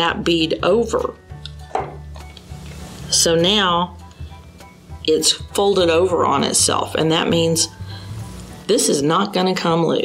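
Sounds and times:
steady low hum: 0:02.5 - 0:09.1.

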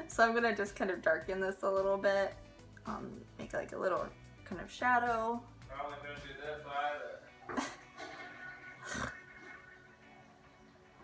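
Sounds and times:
breathy laugh through nose: 0:07.5 - 0:09.5.

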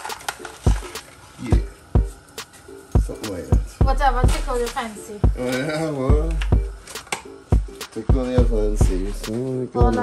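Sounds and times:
kick drum thumps: 0:06.1 - 0:06.8, 0:07.6 - 0:09.1, 0:09.8 - 0:10.0.

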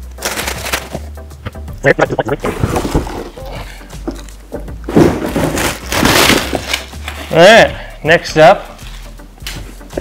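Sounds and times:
plastic packaging crinkling: 0:00.0 - 0:01.0
cardboard box scraping: 0:02.4 - 0:03.4.

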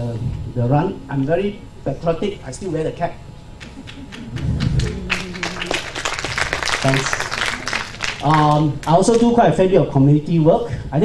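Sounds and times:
low steady hum: 0:00.0 - 0:11.0
audience clapping: 0:03.6 - 0:09.4.

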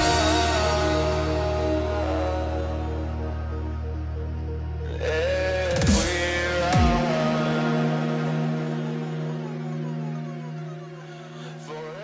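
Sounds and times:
electronic music with synth chords: 0:00.0 - 0:12.0.

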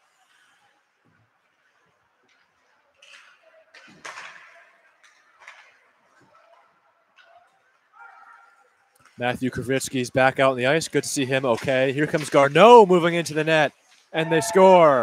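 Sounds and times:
hockey sticks and skates on ice: 0:00.0 - 0:15.0.

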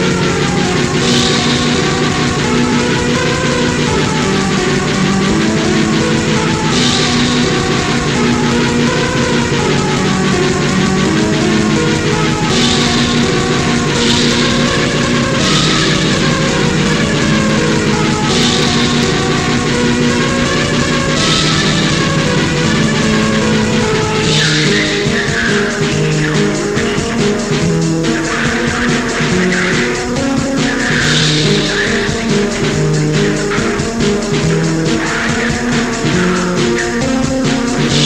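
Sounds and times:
distorted guitars: 0:00.0 - 0:38.0
rapid drumming: 0:00.0 - 0:38.0.

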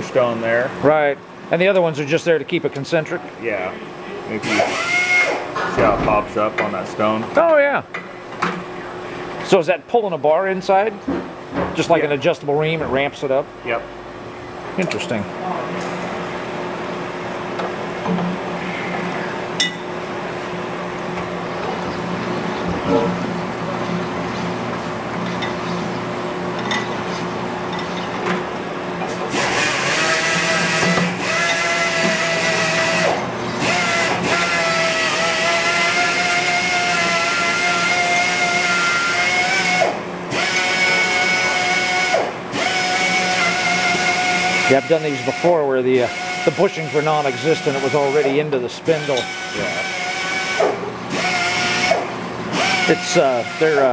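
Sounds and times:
honing stone high-pitched whine: 0:29.3 - 0:53.9.

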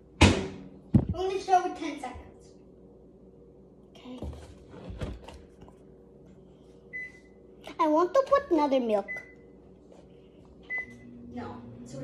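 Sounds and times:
microwave oven beep: 0:06.9 - 0:07.4, 0:09.0 - 0:09.6, 0:10.6 - 0:11.5.

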